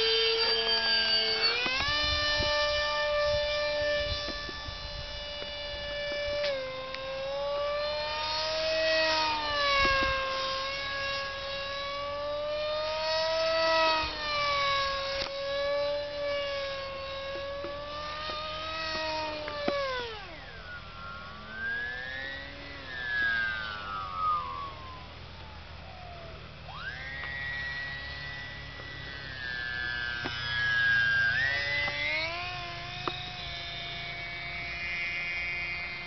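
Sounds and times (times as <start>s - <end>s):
model jet fan whining: 0.0s - 36.0s.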